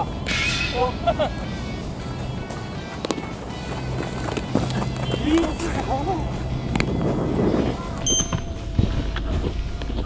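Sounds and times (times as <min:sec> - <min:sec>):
background music: 0:00.0 - 0:10.0
outdoor field ambience: 0:00.0 - 0:10.0.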